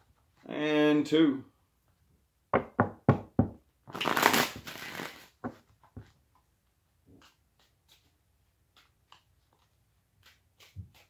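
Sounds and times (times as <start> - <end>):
card deck riffle shuffle: 3.9 - 5.4, 7.2 - 11.0.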